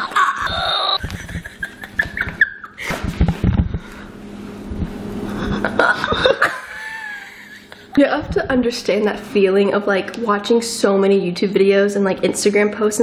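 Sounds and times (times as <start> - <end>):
woman giggling: 0.0 - 3.9, 5.3 - 8.2.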